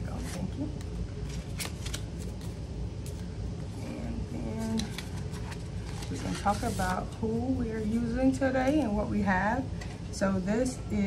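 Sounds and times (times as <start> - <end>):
low steady hum: 0.0 - 11.0
paper rustling: 1.2 - 3.2, 4.6 - 7.0.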